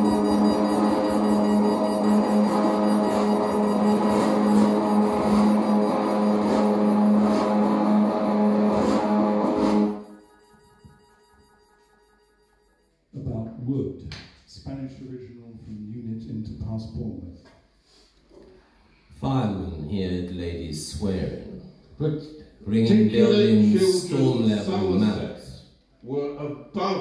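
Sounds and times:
electric guitar and keyboard drone: 0.0s - 10.9s
man speaking into a microphone: 19.2s - 25.6s.

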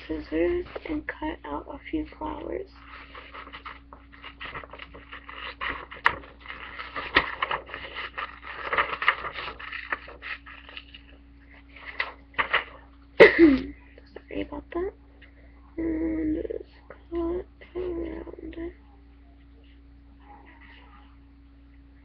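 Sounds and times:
paper rustling: 0.0s - 1.2s, 2.1s - 13.0s
faint steady hum: 0.0s - 22.0s
scissors cutting paper: 3.0s - 11.0s.

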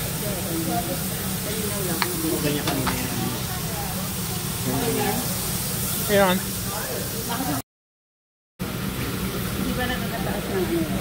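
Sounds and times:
meat sizzling on a grill: 0.0s - 7.6s, 8.7s - 11.0s
murmured conversation: 0.2s - 7.6s.

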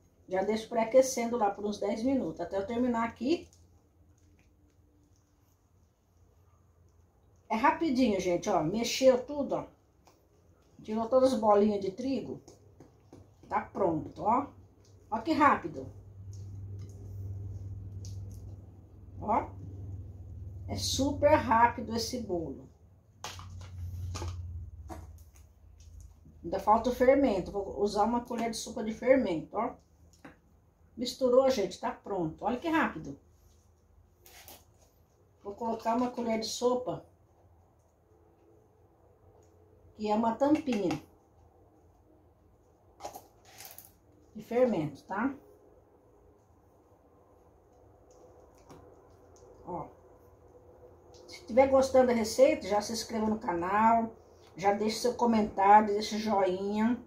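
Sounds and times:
steady low hum: 1.6s - 57.0s.

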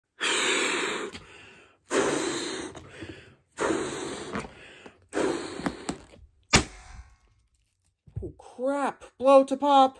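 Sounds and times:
balloon blown up by mouth: 3.6s - 7.3s
balloon bursting pop: 5.2s - 7.3s.

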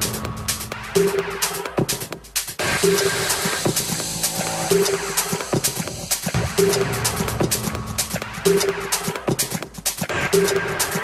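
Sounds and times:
minimal techno music: 0.0s - 11.0s.

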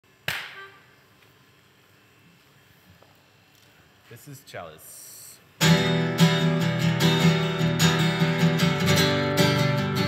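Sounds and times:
sharp slap-like hit: 0.3s - 0.6s.

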